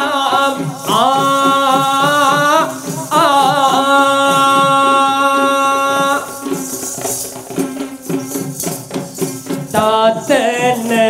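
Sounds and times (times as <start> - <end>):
drums beating: 0.0 - 11.0
high jingling: 0.2 - 11.0.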